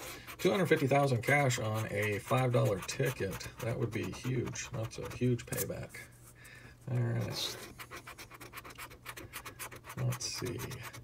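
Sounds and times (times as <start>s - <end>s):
coin scratching paper ticket: 0.2s - 5.3s, 7.7s - 11.0s.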